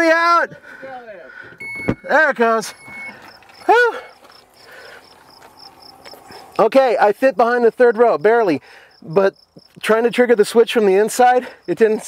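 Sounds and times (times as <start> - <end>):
insect chirping: 1.6 - 6.7, 7.4 - 12.0.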